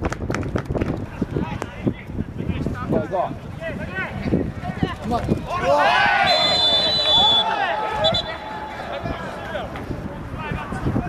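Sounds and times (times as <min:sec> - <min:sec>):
voices shouting: 0:03.8 - 0:09.8.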